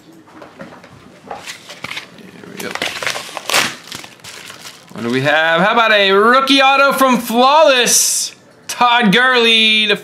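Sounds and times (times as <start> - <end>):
plastic packaging crinkling: 1.2 - 5.5.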